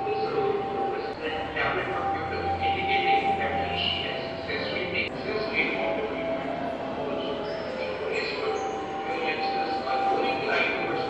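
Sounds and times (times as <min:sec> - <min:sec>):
indistinct speech: 0:00.0 - 0:11.0.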